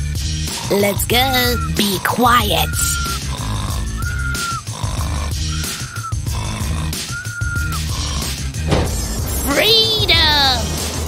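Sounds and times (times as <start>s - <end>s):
background music: 0.0s - 11.0s
cartoon snoring with whistle: 0.2s - 8.7s.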